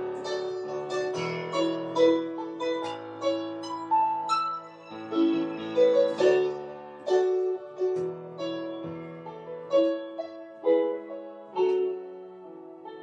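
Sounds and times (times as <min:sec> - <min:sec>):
electronic keyboard piano chords: 0:00.0 - 0:13.0.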